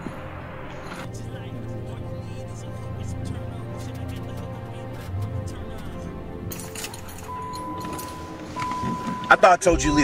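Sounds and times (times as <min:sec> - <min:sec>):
background music: 0:00.0 - 0:10.0
steady high tone: 0:00.0 - 0:10.0
car keys jangling: 0:05.7 - 0:09.4.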